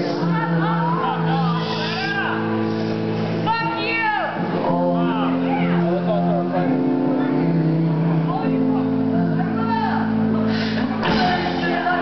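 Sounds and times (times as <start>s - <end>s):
voices singing: 4.4s - 12.0s.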